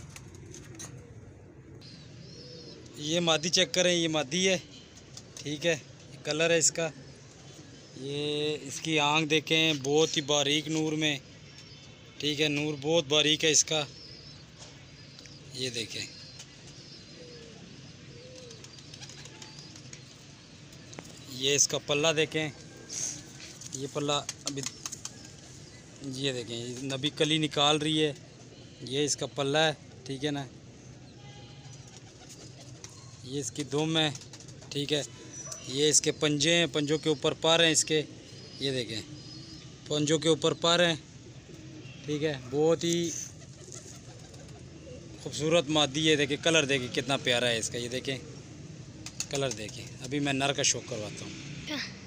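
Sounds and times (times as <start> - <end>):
pigeons cooing: 0.1 - 4.2, 17.0 - 20.2, 41.2 - 45.4.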